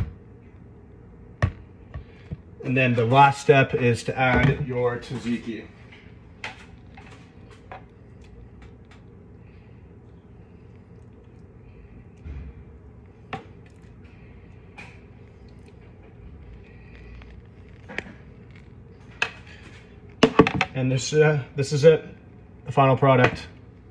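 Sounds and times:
low background hum: 0:00.0 - 0:23.9.

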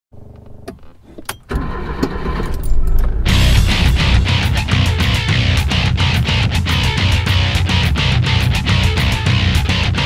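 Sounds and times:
car engine starting and running: 0:00.2 - 0:09.0
electric guitar rock music: 0:03.1 - 0:10.0.

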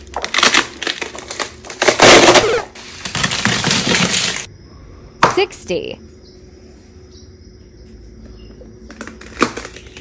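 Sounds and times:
ice cream cones cracking underfoot: 0:00.0 - 0:04.5, 0:08.9 - 0:10.0.

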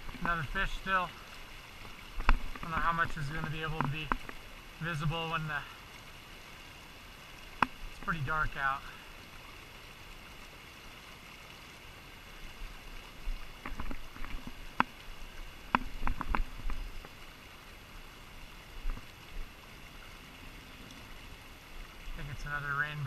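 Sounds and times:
river running over riffles: 0:00.0 - 0:23.0.

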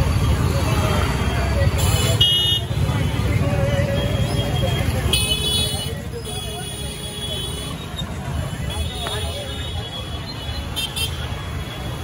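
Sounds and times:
crowd voices: 0:00.0 - 0:12.0
scooters and motorbikes rumbling: 0:00.0 - 0:12.0.

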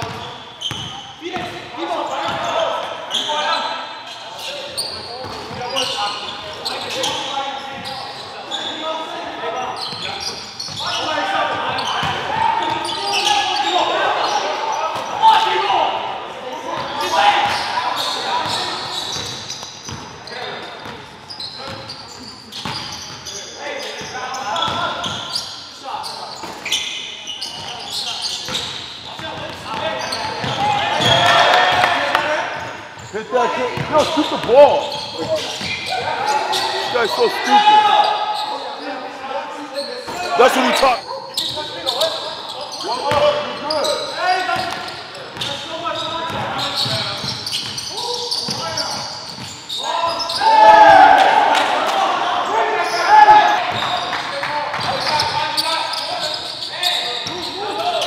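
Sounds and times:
players calling out: 0:29.3 - 0:38.6, 0:40.1 - 0:44.8.

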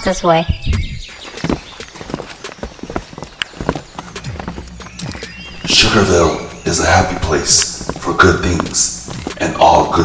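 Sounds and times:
clopping footsteps: 0:00.5 - 0:10.0.

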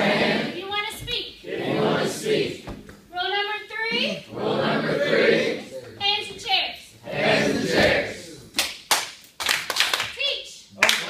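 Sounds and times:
sharp hand claps: 0:08.5 - 0:10.2, 0:10.8 - 0:11.0.

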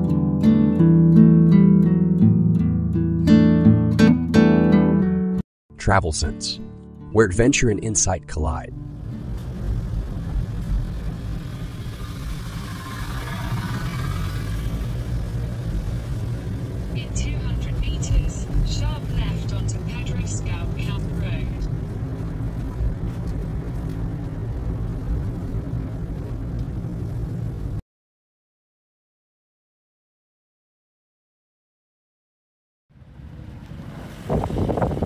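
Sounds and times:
car engine and road noise: 0:08.4 - 0:27.8, 0:32.9 - 0:35.0.

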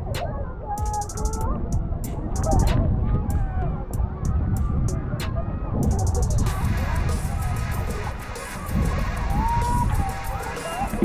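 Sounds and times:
background music: 0:00.0 - 0:11.0
wind buffeting microphone: 0:00.0 - 0:11.0.

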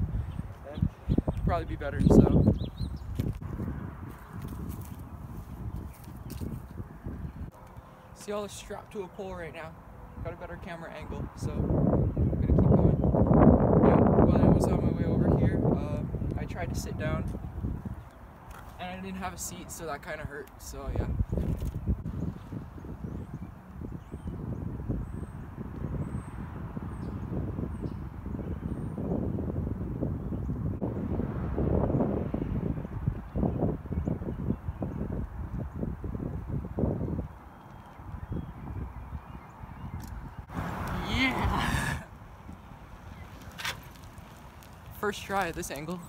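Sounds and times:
strong wind buffeting microphone: 0:00.0 - 0:07.6, 0:10.1 - 0:46.0.

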